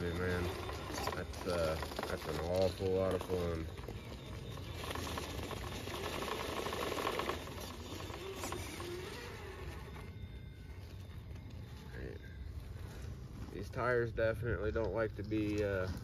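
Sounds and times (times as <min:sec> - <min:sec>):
electric motor whining: 0:00.0 - 0:14.1
tires scrabbling on rock: 0:00.0 - 0:16.0.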